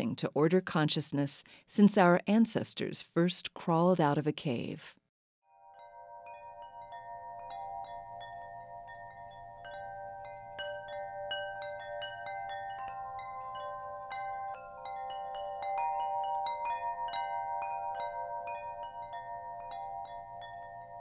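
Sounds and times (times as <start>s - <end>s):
wind chimes ringing: 5.5s - 21.0s.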